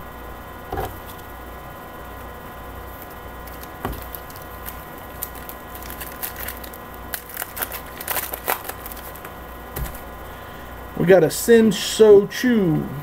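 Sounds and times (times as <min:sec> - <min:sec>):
faint electrical hum: 0:00.0 - 0:13.0
trading cards shuffled by hand: 0:03.0 - 0:10.0.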